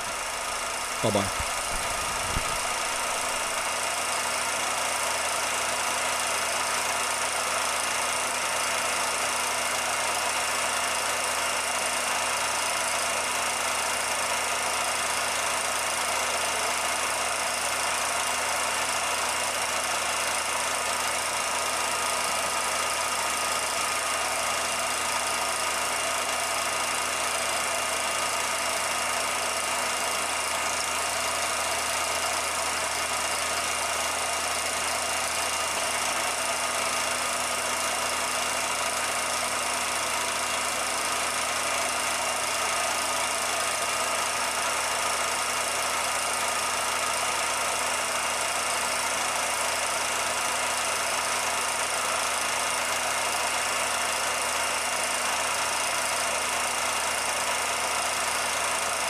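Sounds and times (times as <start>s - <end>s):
film projector whirring: 0.0s - 59.0s.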